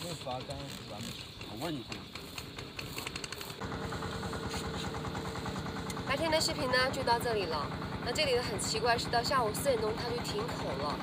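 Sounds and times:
rapid irregular clicks: 0.0 - 3.6
motor hum with low throb: 0.0 - 11.0.

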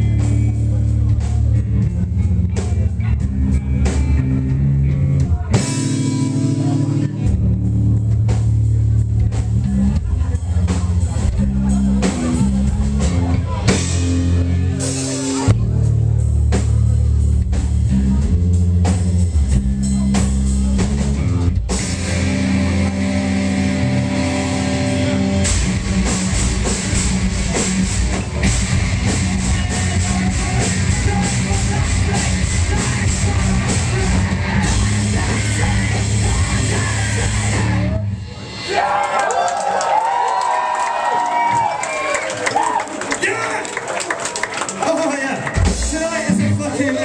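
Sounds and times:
electric guitars: 0.0 - 16.1, 19.0 - 38.7
bass guitar: 0.0 - 42.8, 44.4 - 47.0
drum kit: 0.0 - 42.8, 44.4 - 47.0.

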